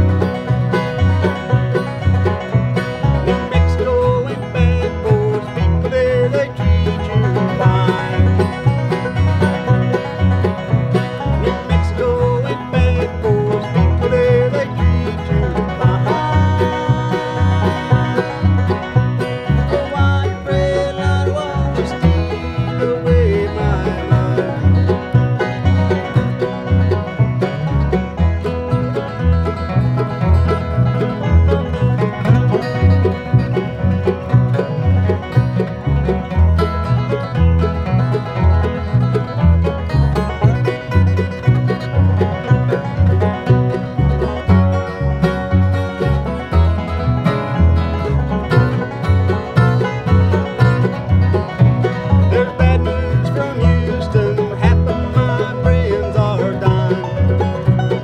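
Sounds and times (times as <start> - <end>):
bluegrass band playing: 0.0 - 58.0.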